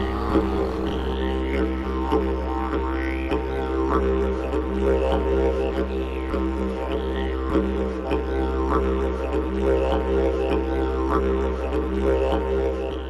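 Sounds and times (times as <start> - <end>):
music with droning bass: 0.0 - 13.0.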